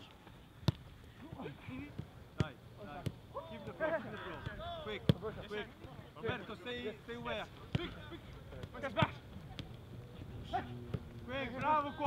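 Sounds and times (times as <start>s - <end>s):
football kick thuds: 0.6s - 6.5s, 7.6s - 9.8s
players calling: 0.8s - 12.0s.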